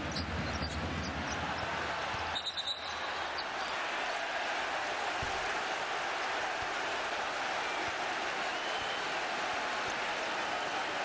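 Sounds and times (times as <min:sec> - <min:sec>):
arena crowd noise: 0:00.0 - 0:11.0
basketball play on court: 0:00.0 - 0:11.0
shoe squeaks: 0:02.4 - 0:03.0.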